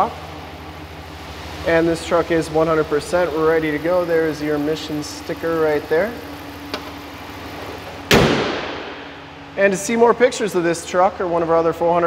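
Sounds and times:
truck engine idling: 0:00.0 - 0:12.0
car hood slamming shut: 0:08.0 - 0:09.1.

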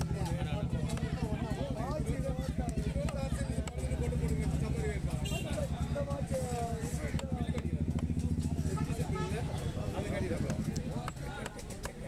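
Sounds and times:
voices chattering: 0:00.0 - 0:12.0
knife chopping on wooden block: 0:10.4 - 0:12.0.

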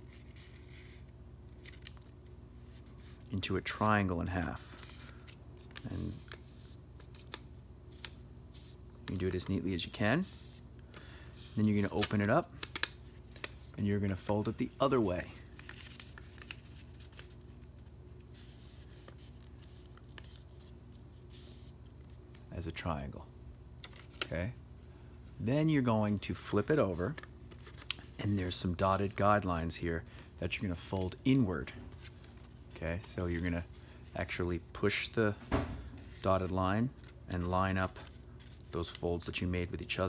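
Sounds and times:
paper rustling and crinkling: 0:00.0 - 0:22.5, 0:26.3 - 0:29.2, 0:35.8 - 0:39.0
low electrical hum: 0:00.0 - 0:40.0.

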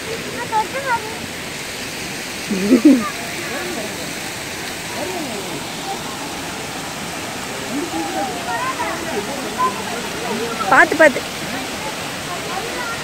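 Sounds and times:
waterfall rushing: 0:00.0 - 0:13.0
faint voices: 0:02.4 - 0:13.0.

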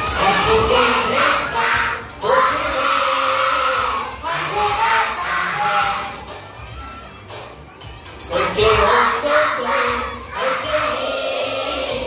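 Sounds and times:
children shouting and singing: 0:00.0 - 0:12.0
loud music: 0:00.0 - 0:12.0.

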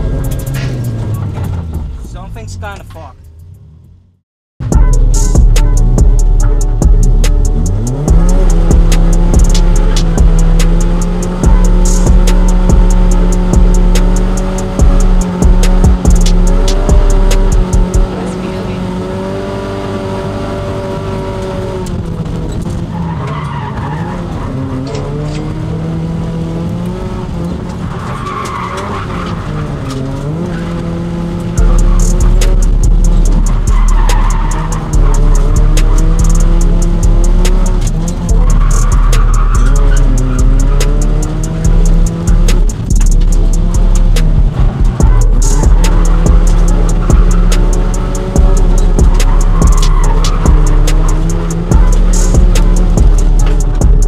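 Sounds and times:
car engine revving: 0:00.0 - 0:54.0
music with heavy beat: 0:04.6 - 0:18.1, 0:31.6 - 0:54.0
tyres squealing: 0:22.3 - 0:25.6, 0:27.7 - 0:54.0.

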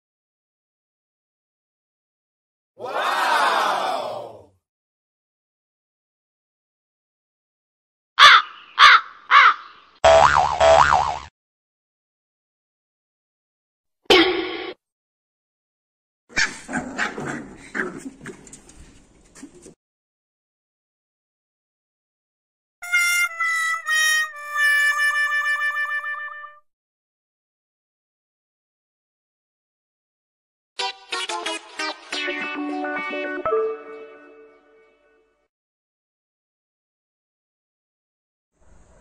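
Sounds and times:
harsh caw-like calls: 0:08.2 - 0:09.7.

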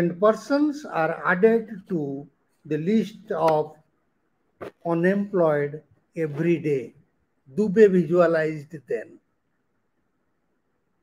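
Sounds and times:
man speaking: 0:00.0 - 0:03.8, 0:04.6 - 0:09.2
faint background hiss: 0:00.0 - 0:11.0.

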